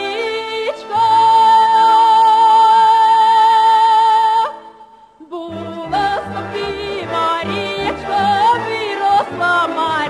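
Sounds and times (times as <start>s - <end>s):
woman singing folk song: 0.0s - 10.0s.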